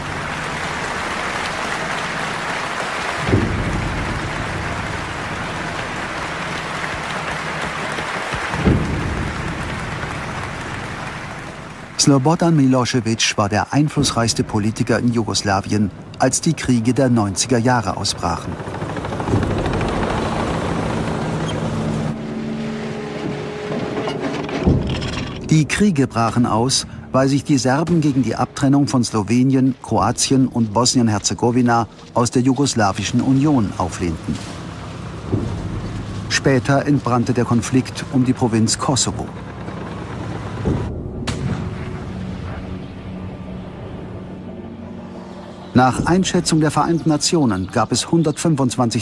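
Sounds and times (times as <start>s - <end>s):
tank engine rumble: 0.0s - 49.0s
heavy low thump: 3.2s - 11.8s, 23.2s - 27.1s, 35.1s - 36.8s, 40.5s - 45.0s.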